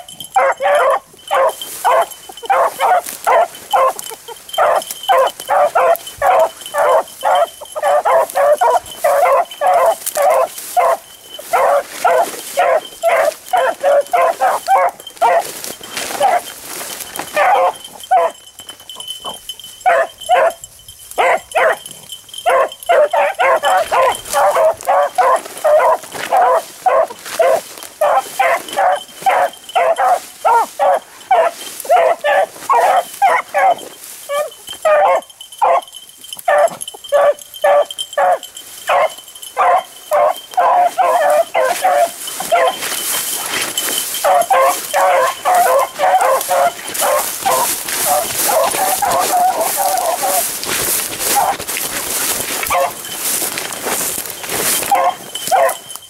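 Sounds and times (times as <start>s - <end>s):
dogs baying: 0.0s - 56.0s.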